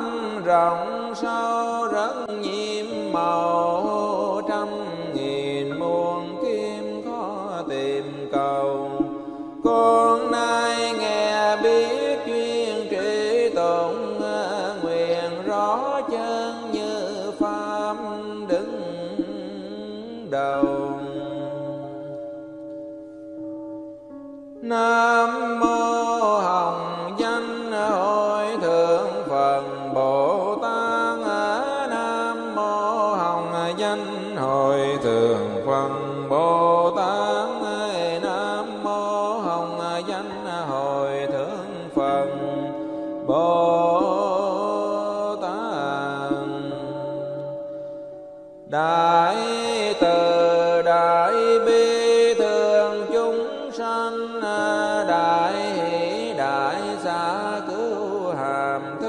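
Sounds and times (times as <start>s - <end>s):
musical accompaniment: 0.0s - 55.8s
person chanting melodically: 0.0s - 59.0s.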